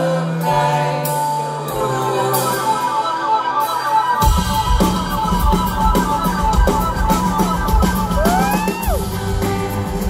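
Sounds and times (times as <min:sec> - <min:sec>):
drums: 0:00.0 - 0:10.0
bass guitar: 0:03.6 - 0:10.0.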